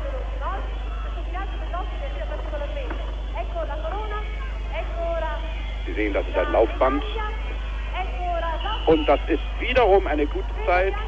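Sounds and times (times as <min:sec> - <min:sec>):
low electrical hum: 0:00.0 - 0:11.0
people calling out: 0:03.4 - 0:11.0.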